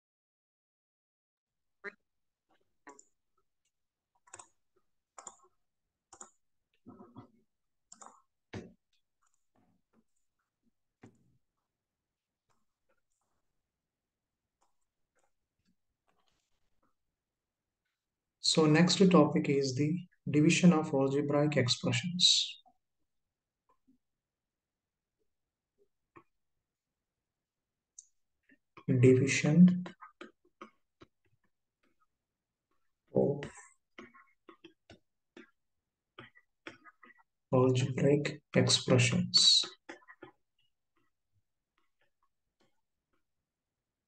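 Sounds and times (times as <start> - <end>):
man's voice: 18.4 - 22.6, 28.9 - 29.8, 37.6 - 39.8.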